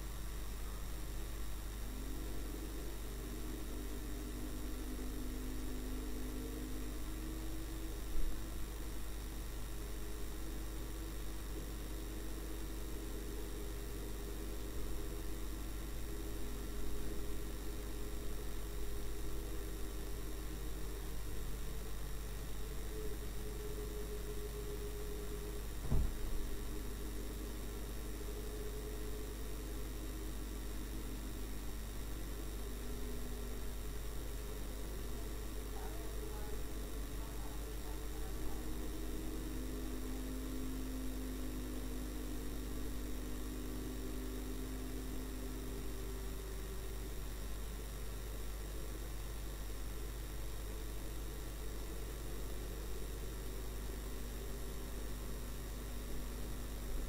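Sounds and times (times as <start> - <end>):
dashcam electrical whine: 0.0 - 57.0
brief knocks: 25.8 - 26.3.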